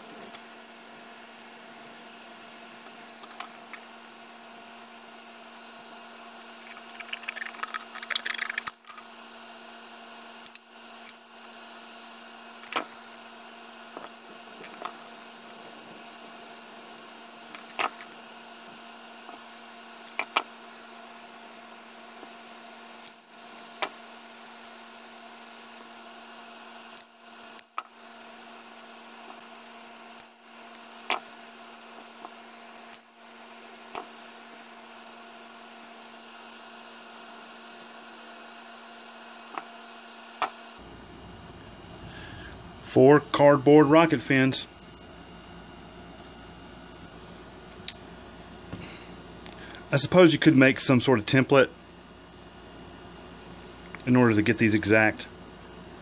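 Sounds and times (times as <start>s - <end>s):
low background hum: 0.0s - 56.0s.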